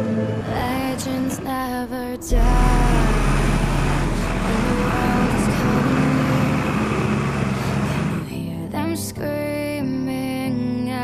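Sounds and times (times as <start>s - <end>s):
tractor engine under load: 0.0s - 8.5s.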